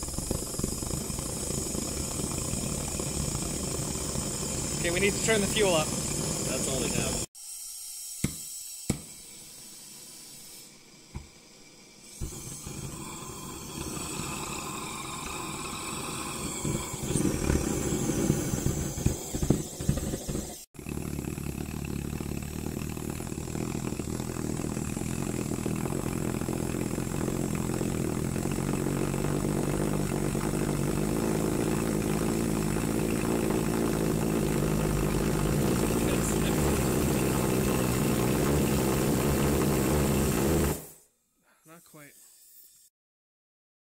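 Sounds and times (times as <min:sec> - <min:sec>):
pulsejet sputtering and roaring: 0:00.0 - 0:07.3, 0:12.2 - 0:41.0.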